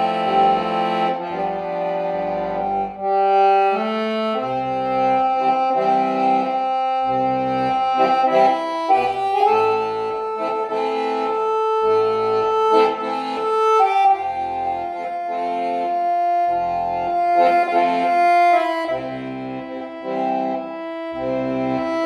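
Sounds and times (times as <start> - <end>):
piano accordion playing a tune: 0.0 - 22.0.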